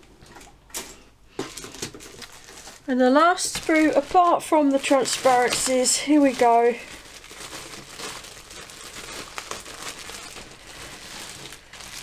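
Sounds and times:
plastic bag crinkling: 0:00.2 - 0:12.0.

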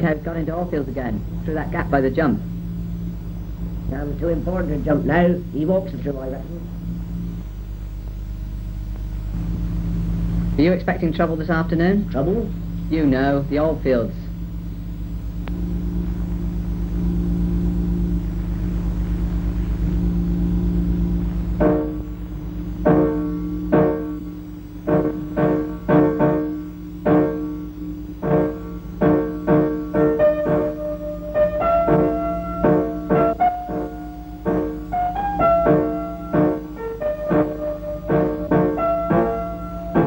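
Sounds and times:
steady low hum: 0:00.0 - 0:40.0
slow piano music: 0:14.3 - 0:40.0.

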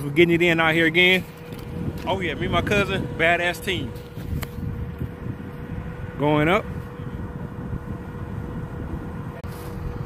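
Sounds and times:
low machinery rumble: 0:00.0 - 0:10.0
wind on microphone: 0:00.9 - 0:10.0.

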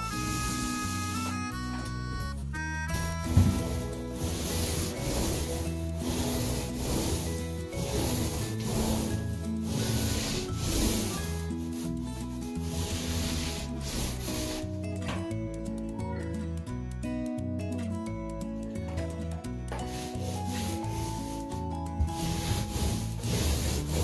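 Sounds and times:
paint roller on drywall: 0:00.0 - 0:02.1, 0:02.9 - 0:15.2, 0:19.7 - 0:24.0
background music: 0:00.0 - 0:24.0.

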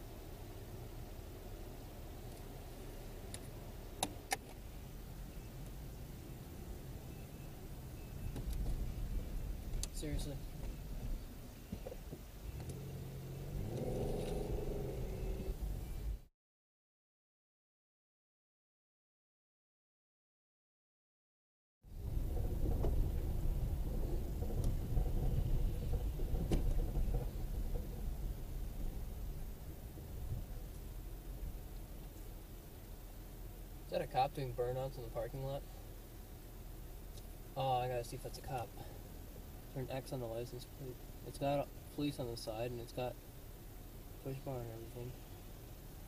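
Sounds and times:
car engine rumble from inside: 0:00.0 - 0:16.3, 0:21.9 - 0:46.0.

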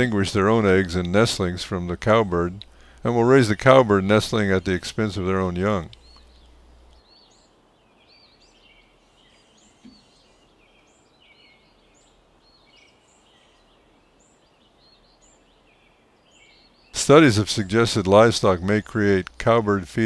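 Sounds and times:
flock of birds chattering: 0:00.0 - 0:20.0.

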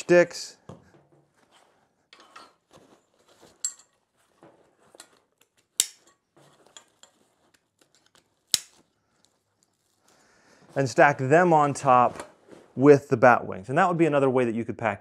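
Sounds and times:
metallic clinks and knocks: 0:03.4 - 0:04.0.

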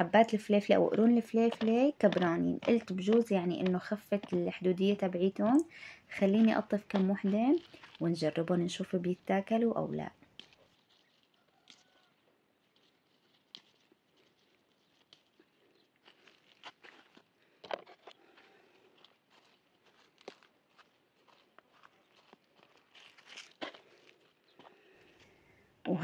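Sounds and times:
hands rustling leaves: 0:06.2 - 0:25.2.

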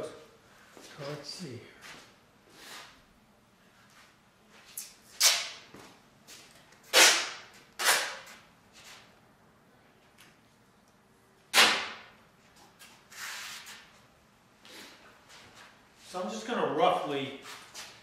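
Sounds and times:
tape ripping off roll: 0:05.2 - 0:05.6, 0:06.9 - 0:08.4, 0:11.5 - 0:12.2.

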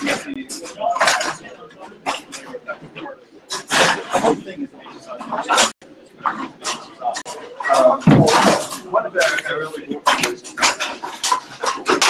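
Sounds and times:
people chatting indistinctly: 0:00.0 - 0:12.0.

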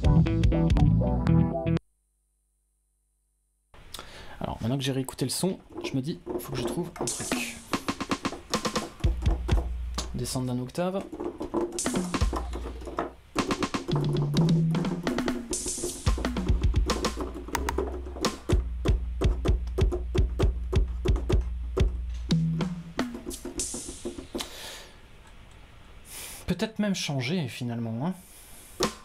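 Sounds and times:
electronic drum pattern: 0:05.4 - 0:24.5.

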